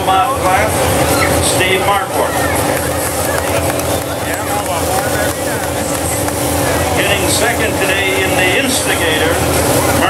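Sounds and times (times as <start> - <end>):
faint chatter of people: 0.0 - 10.0
low rumble with droning hum: 0.0 - 10.0.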